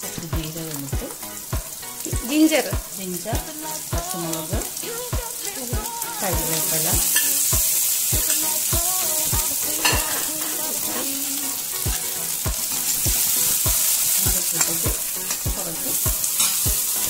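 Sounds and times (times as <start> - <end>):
background music with a beat: 0.0 - 17.0
oil sizzling in a pan: 0.0 - 17.0
steel ladle stirring: 7.1 - 7.5, 9.6 - 16.7.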